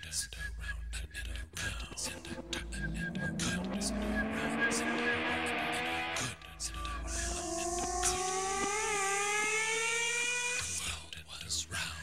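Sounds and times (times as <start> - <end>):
rising electronic tone: 1.6 - 10.6.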